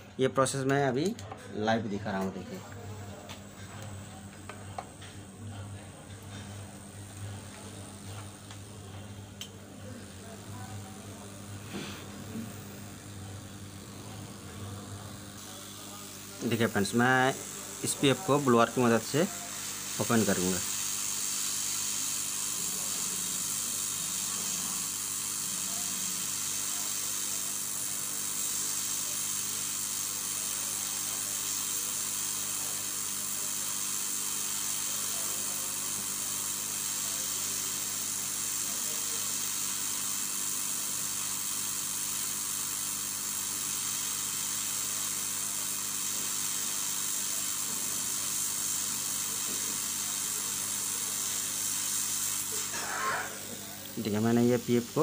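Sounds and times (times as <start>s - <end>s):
hot air gun hissing: 2.2s - 55.0s.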